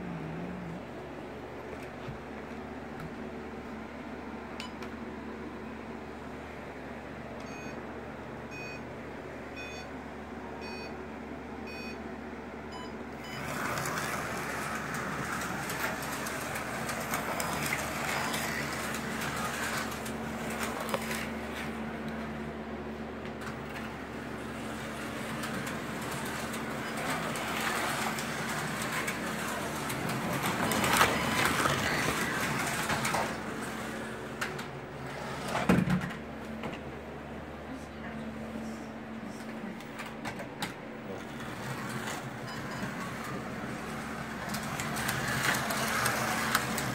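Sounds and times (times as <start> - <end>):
slot car motors whirring: 12.7 - 36.2, 40.0 - 46.9.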